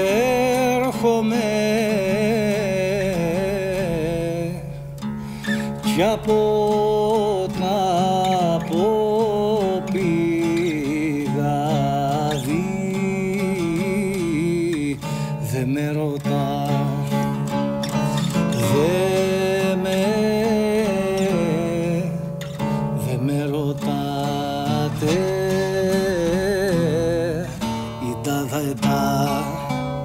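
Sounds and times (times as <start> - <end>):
lute plucked rhythmically: 0.0 - 30.0
man singing: 0.0 - 30.0.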